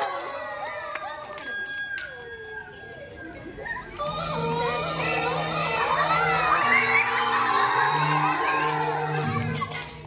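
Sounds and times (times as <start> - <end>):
children shouting and cheering: 0.0 - 10.0.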